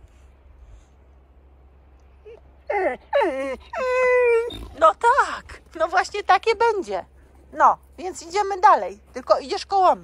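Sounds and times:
dog whining and moaning: 2.2 - 5.6.

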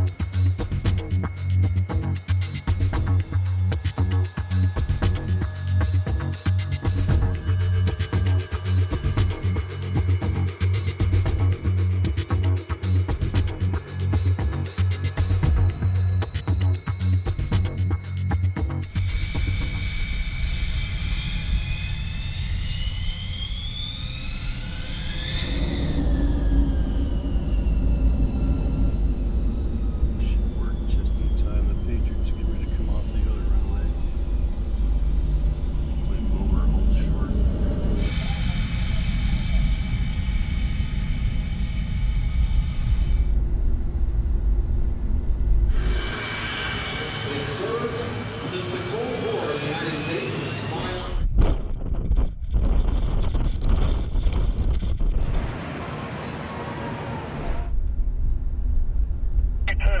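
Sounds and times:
jet engine low rumble: 0.0 - 60.0
jet engine whining up: 0.0 - 60.0.

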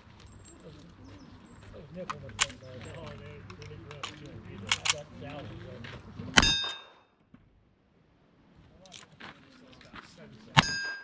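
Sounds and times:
low voices: 0.0 - 6.4
steel target ringing: 6.4 - 7.0, 10.6 - 11.0.

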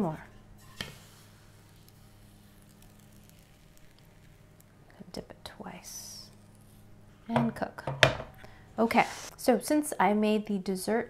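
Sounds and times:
low steady hum: 0.0 - 11.0
batter sizzling in hot pan: 0.6 - 4.9.

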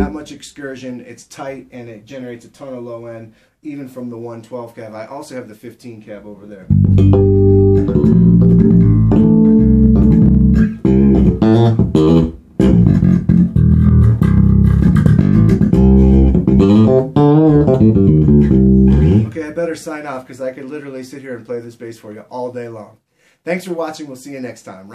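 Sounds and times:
electric bass line plucked: 6.7 - 19.4.

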